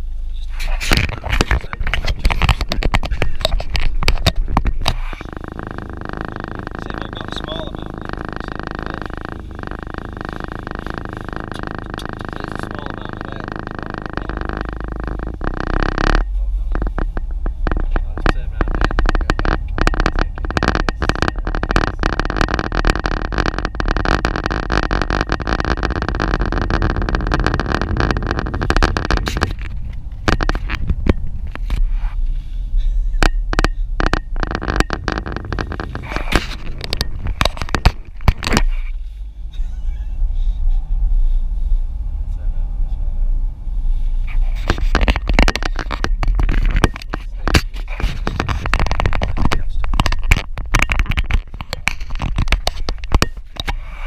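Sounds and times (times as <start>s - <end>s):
car engine and road noise: 0.0s - 54.0s
wind buffeting microphone: 0.6s - 14.0s, 16.2s - 39.1s.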